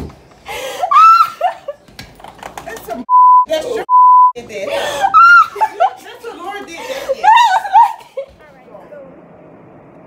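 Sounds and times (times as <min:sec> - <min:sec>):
censor bleeps: 0:03.1 - 0:04.4.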